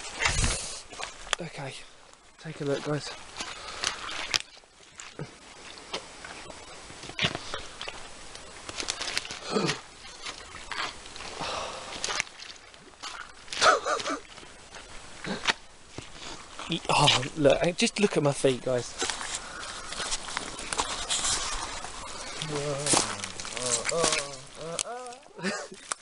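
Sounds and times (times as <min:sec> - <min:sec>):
boots squelching in mud: 0:00.0 - 0:01.4, 0:02.6 - 0:17.4, 0:18.7 - 0:26.0
person grunting and breathing: 0:09.4 - 0:09.8, 0:22.4 - 0:25.8.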